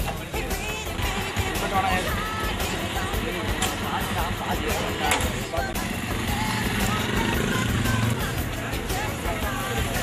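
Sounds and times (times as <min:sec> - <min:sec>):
motorcycle engine humming: 0:00.0 - 0:10.0
music: 0:00.0 - 0:10.0.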